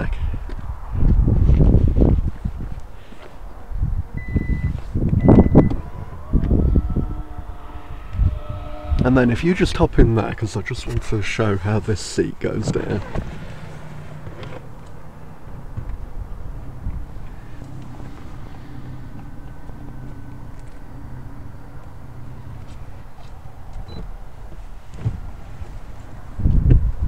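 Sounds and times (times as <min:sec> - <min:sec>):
seatback thump: 0:24.9 - 0:25.4.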